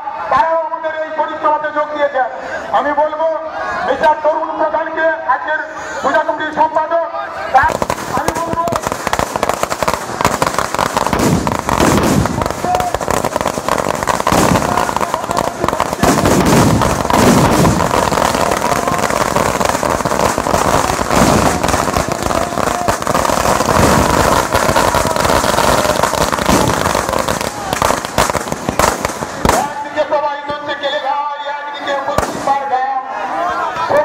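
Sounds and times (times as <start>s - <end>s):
firecrackers bangs and crackles: 7.6s - 30.7s, 32.1s - 32.7s.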